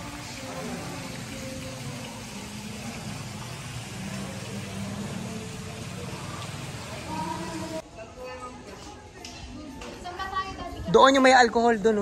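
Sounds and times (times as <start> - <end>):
murmur of voices: 2.3 - 11.8.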